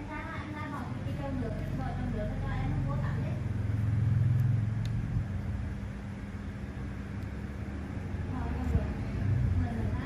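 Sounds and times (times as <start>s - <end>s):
passing motor vehicle rumble: 0.0s - 10.0s.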